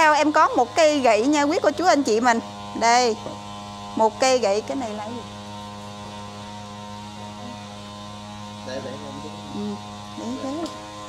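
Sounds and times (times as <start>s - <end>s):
electrical mains hum: 0.0s - 11.0s
faint voice: 8.7s - 10.7s.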